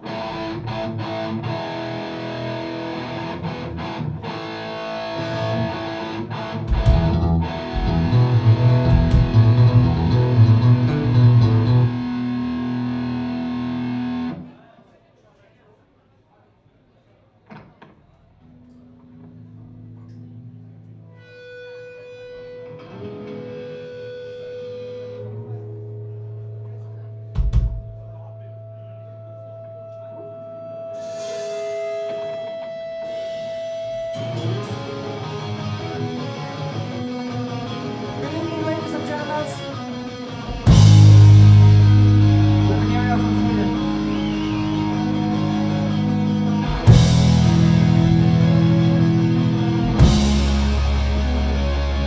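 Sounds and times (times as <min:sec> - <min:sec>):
punk rock band playing: 0:00.0 - 0:14.4, 0:31.0 - 0:52.0
electric guitars and bass: 0:00.0 - 0:14.5, 0:18.6 - 0:52.0
loud low drum hit: 0:07.8 - 0:09.9, 0:40.7 - 0:42.5, 0:49.8 - 0:51.5.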